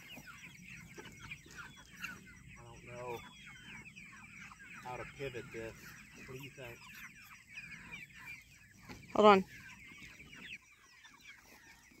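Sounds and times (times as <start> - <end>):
chickens clucking and chirping: 0.0 - 12.0.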